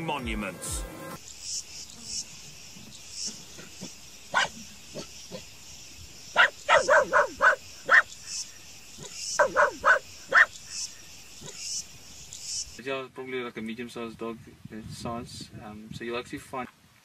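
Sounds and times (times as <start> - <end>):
small dog barking: 3.8 - 5.4, 6.3 - 8.1, 9.4 - 10.5.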